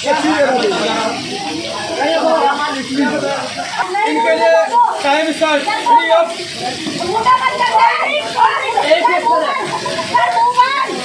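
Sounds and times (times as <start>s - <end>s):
people talking and calling out: 0.0s - 11.0s
rain hissing: 0.0s - 11.0s.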